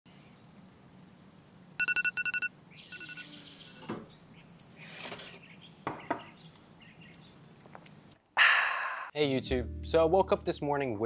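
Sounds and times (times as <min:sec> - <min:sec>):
electronic alarm beeping: 0:01.8 - 0:03.8.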